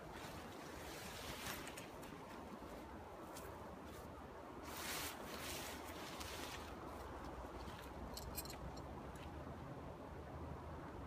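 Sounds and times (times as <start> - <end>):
faint rustling: 0.0 - 9.4.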